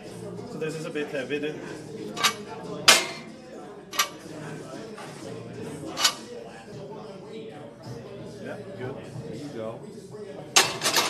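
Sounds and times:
weight plates clinking: 4.0s - 4.3s.

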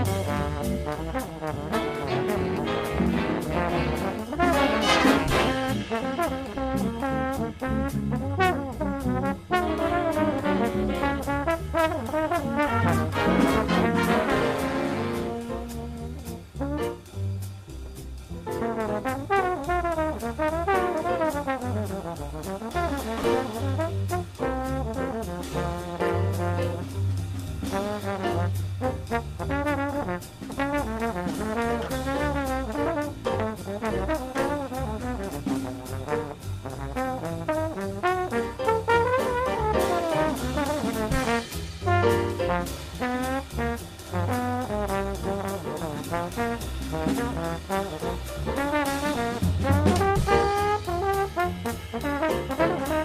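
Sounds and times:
big band rhythm section: 0.0s - 53.0s
jazz trombone solo: 0.0s - 53.0s.

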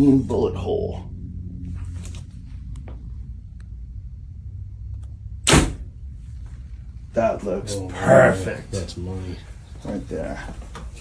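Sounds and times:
low steady hum: 0.0s - 11.0s
arrow released with sharp crack: 5.4s - 5.9s.

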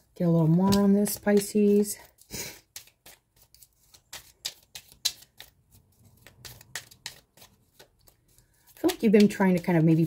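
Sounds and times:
cards being shuffled: 0.4s - 10.0s.

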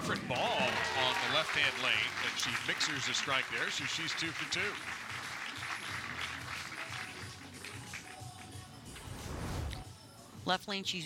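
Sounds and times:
crowd applause: 0.0s - 8.2s
music playing: 0.0s - 11.0s.

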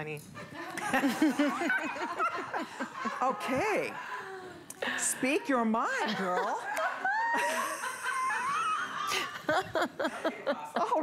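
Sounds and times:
woman laughing in a high squeal: 6.8s - 9.5s.

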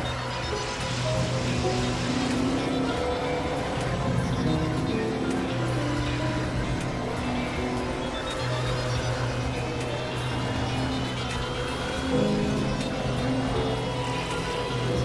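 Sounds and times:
grainy synthesizer drone: 0.0s - 15.0s
thin high rising tone: 0.0s - 15.0s.

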